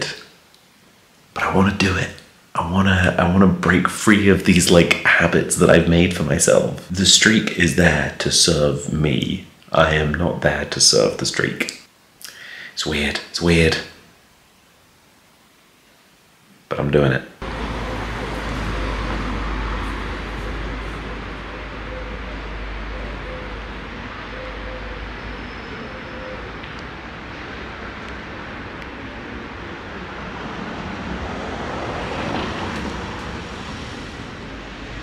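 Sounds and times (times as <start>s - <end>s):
city street traffic: 17.4s - 35.0s
vehicle passing: 17.4s - 35.0s.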